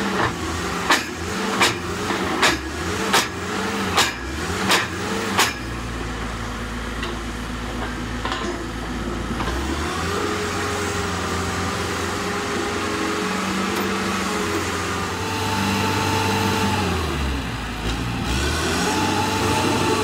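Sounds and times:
auger drill rig engine: 0:00.0 - 0:20.0.

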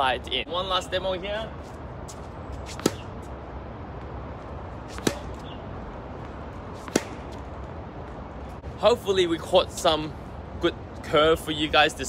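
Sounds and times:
steady background hum: 0:00.0 - 0:12.0
tennis racket striking ball: 0:02.1 - 0:03.3, 0:04.8 - 0:05.6, 0:06.7 - 0:07.5
ball bouncing on hard court: 0:02.7 - 0:03.2, 0:04.8 - 0:05.6, 0:06.7 - 0:07.5.

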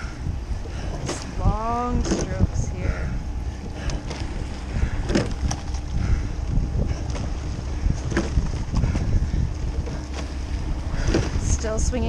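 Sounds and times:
oars knocking in oarlocks: 0:00.0 - 0:11.6
wind on microphone: 0:00.0 - 0:12.0.

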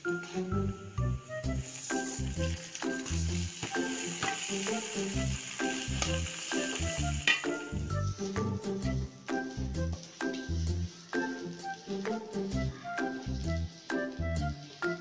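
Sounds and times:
background music with steady beat: 0:00.0 - 0:15.0
hot oil sizzling with rice: 0:00.9 - 0:15.0.

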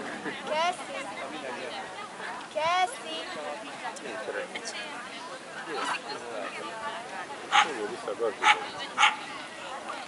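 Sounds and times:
dog barking: 0:07.5 - 0:07.7, 0:08.4 - 0:09.2.

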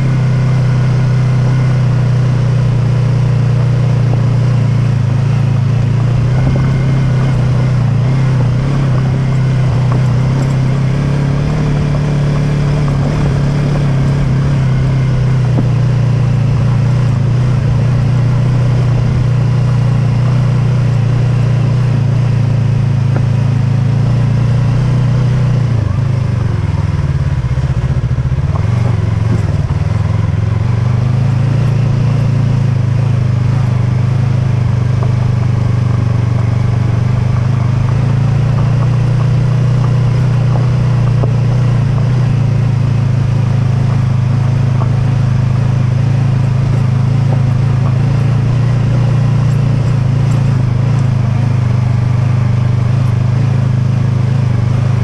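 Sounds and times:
motorcycle engine running: 0:00.0 - 0:55.0
tyres rumbling on gravel: 0:03.4 - 0:55.0.

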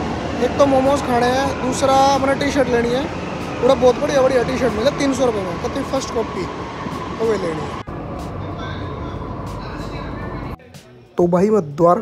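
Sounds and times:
train rumbling: 0:00.0 - 0:10.6.

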